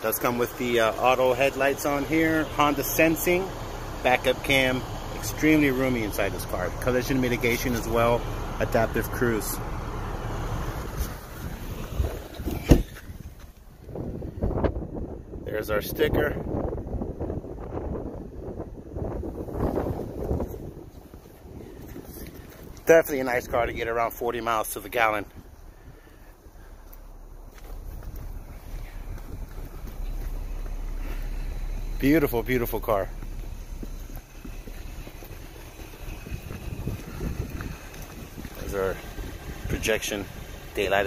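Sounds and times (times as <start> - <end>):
wind rumble on microphone: 10.5 - 41.0
car door shutting: 10.8 - 13.6
soft bumps: 10.8 - 14.7, 26.4 - 39.4.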